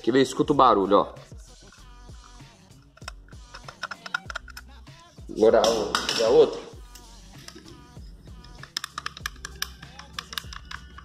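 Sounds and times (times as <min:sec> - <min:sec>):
hinge pins clicking and knocking: 0:02.9 - 0:04.7, 0:07.4 - 0:11.0.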